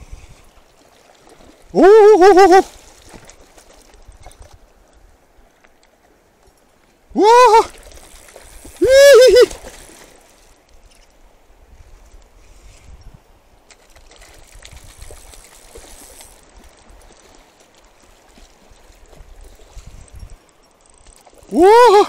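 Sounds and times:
shallow river running: 0.0 - 22.0
man shouting: 1.8 - 2.7, 7.1 - 7.7, 8.8 - 9.5, 21.5 - 22.0.

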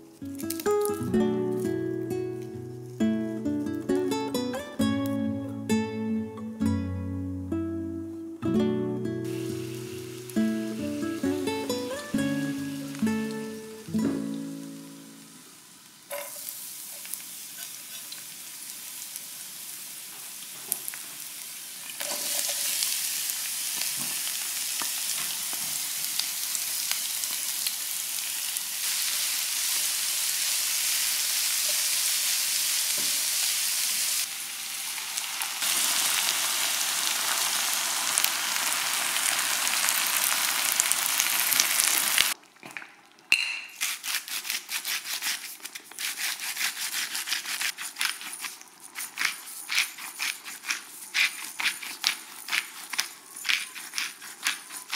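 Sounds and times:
garlic and onion sizzling in oil: 0.0 - 5.8, 9.2 - 42.4, 43.3 - 54.9
spatula stirring in pan: 43.8 - 54.9.

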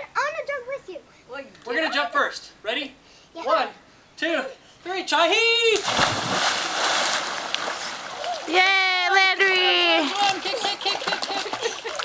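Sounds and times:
big splash into swimming pool: 5.7 - 8.9
light splashing: 5.7 - 12.0
water churning: 5.8 - 12.0.

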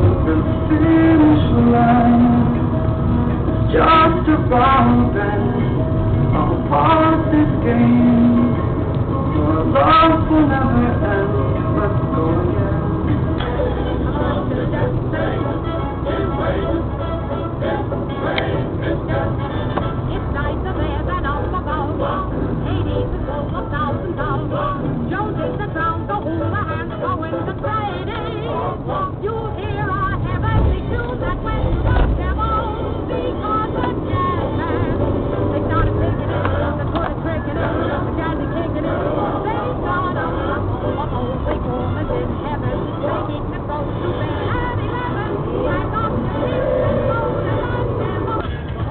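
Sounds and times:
engine and tyre hum: 0.0 - 48.9
song with singing on car stereo: 0.0 - 48.9.

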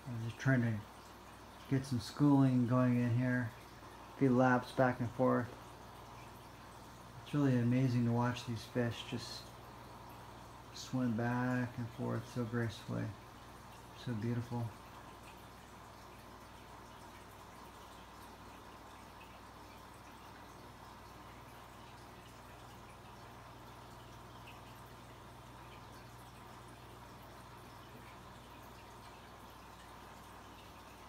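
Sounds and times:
low steady hum: 0.0 - 31.0
water bubbling and trickling: 0.0 - 31.0.

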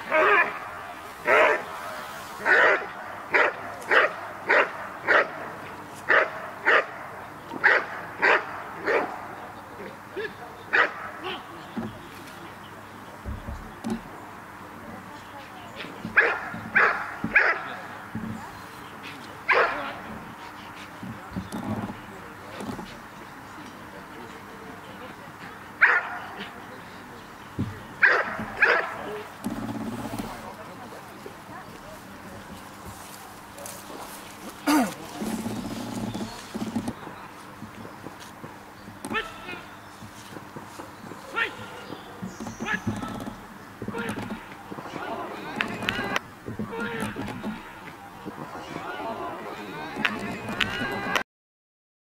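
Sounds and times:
dog barking: 0.1 - 5.4, 6.1 - 9.5, 10.2 - 11.4, 16.1 - 17.8, 19.5 - 20.0, 25.8 - 26.5, 28.0 - 29.2.

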